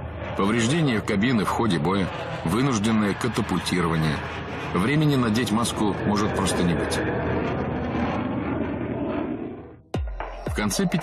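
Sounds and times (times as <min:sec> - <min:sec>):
jet noise in cockpit: 0:00.0 - 0:09.9.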